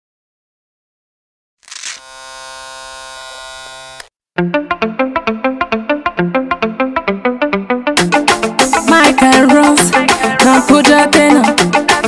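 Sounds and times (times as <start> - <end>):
electronic buzzing drone: 1.7 - 4.1.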